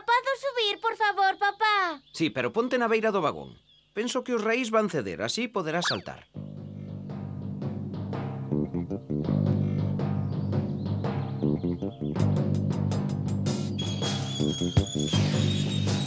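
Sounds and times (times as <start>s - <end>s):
soundtrack music with drums: 6.3s - 16.0s
sharp percussive strokes: 13.5s - 16.0s.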